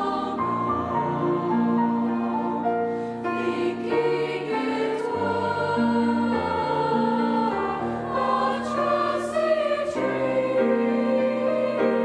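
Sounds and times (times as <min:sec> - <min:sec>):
choir singing in parts: 0:00.0 - 0:12.0
grand piano accompaniment: 0:00.0 - 0:12.0.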